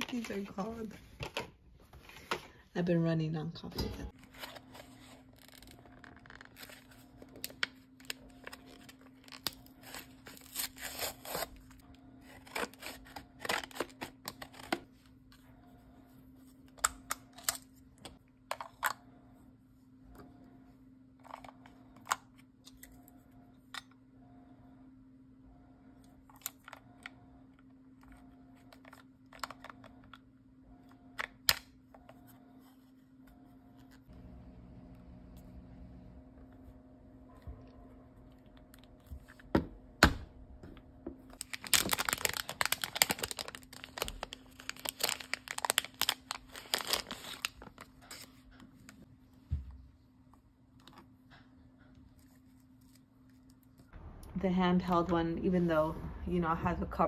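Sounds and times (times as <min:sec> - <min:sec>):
plastic packaging tearing and crinkling: 0:04.2 - 0:14.9, 0:41.3 - 0:48.4.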